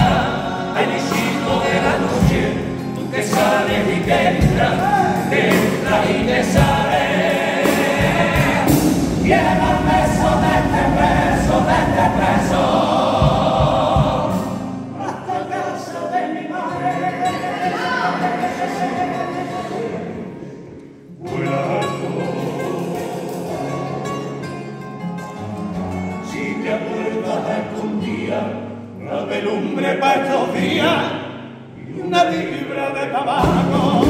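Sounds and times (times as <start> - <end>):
low knocking beat: 0.0 - 14.6
guitars: 0.0 - 34.0
male choir singing in harmony: 0.0 - 34.0.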